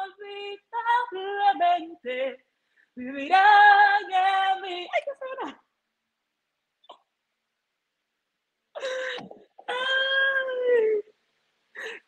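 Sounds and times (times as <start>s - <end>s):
woman gasping: 8.8s - 9.4s, 11.7s - 12.0s.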